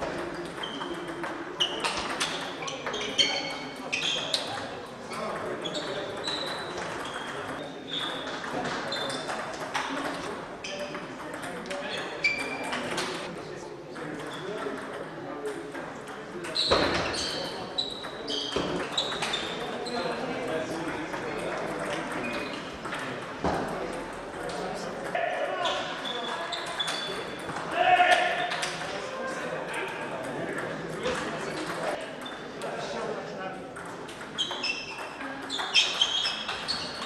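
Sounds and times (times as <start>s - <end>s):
hubbub of voices: 0.0s - 37.0s
table tennis ball ping: 0.1s - 13.1s, 14.0s - 19.8s, 33.7s - 37.0s
shoes squeaking: 1.6s - 4.6s, 11.9s - 13.3s, 16.5s - 20.2s, 25.2s - 28.7s, 34.3s - 37.0s.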